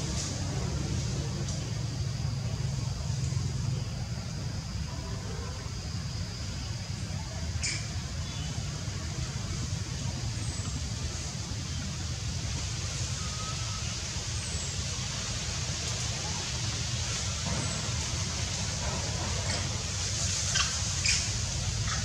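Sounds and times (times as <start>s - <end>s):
low rumble with hiss: 0.0s - 22.0s.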